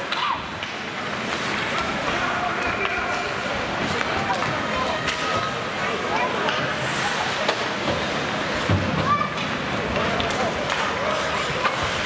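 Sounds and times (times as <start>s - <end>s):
arena noise: 0.0s - 12.0s
hockey sticks and puck clicks: 0.0s - 12.0s.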